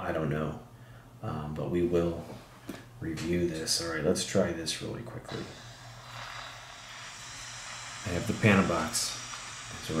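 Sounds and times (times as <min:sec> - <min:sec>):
low electrical hum: 0:00.0 - 0:10.0
steady background hiss: 0:00.0 - 0:10.0.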